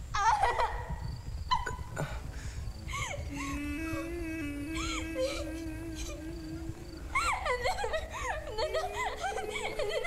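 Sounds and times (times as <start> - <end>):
woman crying and sobbing: 0.2 - 0.9, 2.9 - 10.0.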